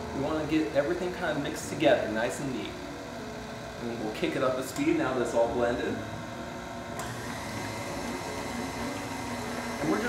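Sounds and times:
stand mixer motor running: 0:06.9 - 0:10.0.

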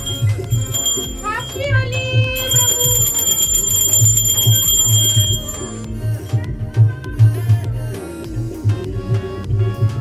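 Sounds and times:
brass hand bell ringing: 0:00.0 - 0:05.9
background music with beat: 0:00.0 - 0:10.0.

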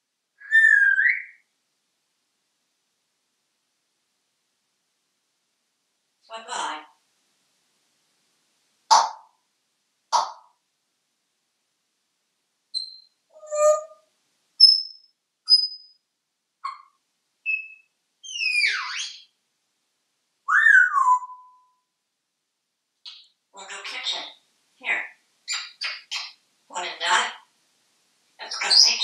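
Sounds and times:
parrot whistles: 0:00.4 - 0:01.4, 0:12.8 - 0:14.0, 0:17.5 - 0:19.2, 0:20.5 - 0:21.7.

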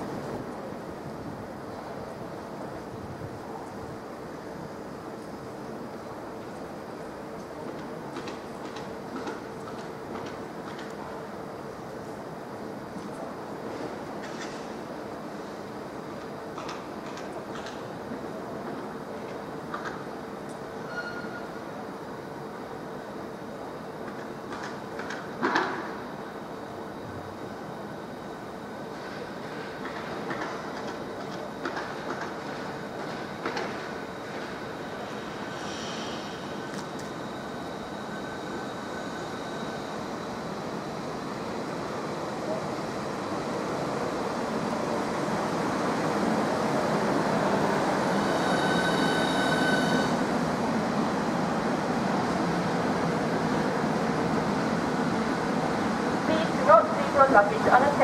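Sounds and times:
high whine of passing train: 0:00.0 - 0:58.0
train rolling noise: 0:00.0 - 0:58.0.

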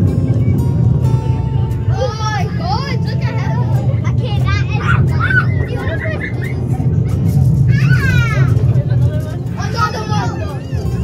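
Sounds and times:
ride vehicle rumbling: 0:00.0 - 0:11.0
children calling out: 0:01.9 - 0:08.8, 0:09.6 - 0:11.0.

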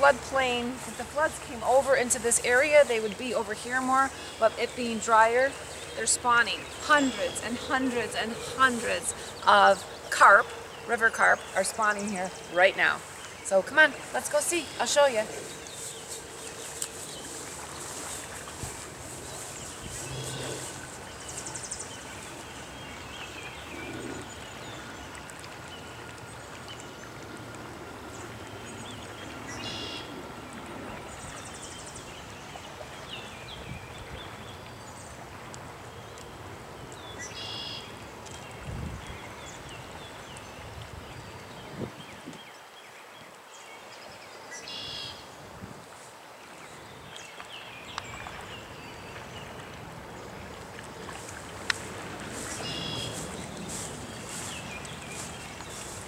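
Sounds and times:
rushing water and wind: 0:00.0 - 0:56.0
high bird chirps: 0:52.4 - 0:56.0.

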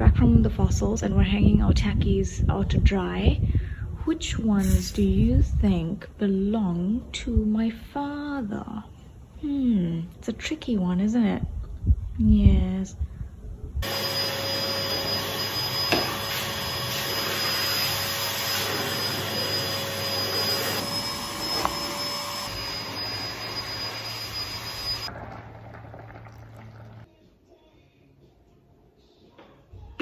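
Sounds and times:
appliance motor whirring: 0:13.8 - 0:25.1
faint high whine: 0:13.8 - 0:25.2.

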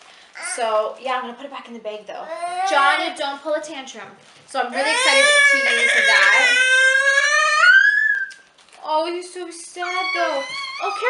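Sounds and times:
toddler wailing: 0:02.3 - 0:03.0, 0:04.7 - 0:08.4, 0:09.8 - 0:11.0.

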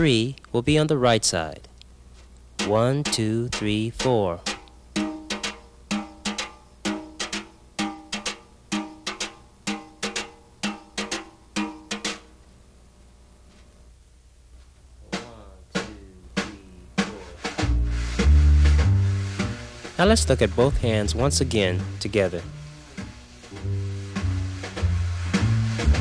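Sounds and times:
wire brush tapping snare drum: 0:02.5 - 0:12.4, 0:15.1 - 0:26.0
low bass notes: 0:17.6 - 0:23.0, 0:23.6 - 0:26.0.

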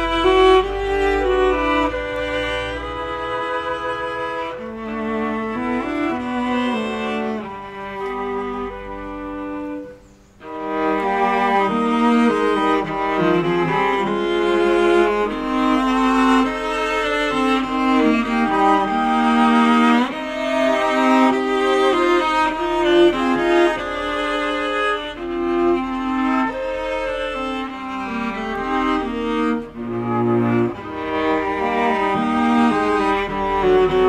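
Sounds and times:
bowed viola and cello: 0:00.0 - 0:34.0
flute melody: 0:00.0 - 0:34.0.

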